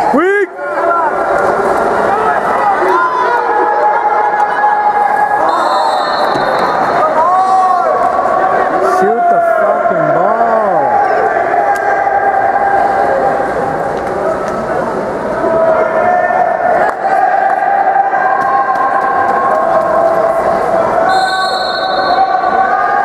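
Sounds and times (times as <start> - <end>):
spectators shouting and cheering: 0.0 - 23.0.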